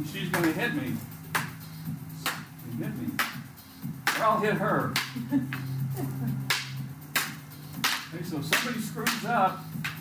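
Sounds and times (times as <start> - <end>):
wooden sticks clacking: 6.4 - 10.0.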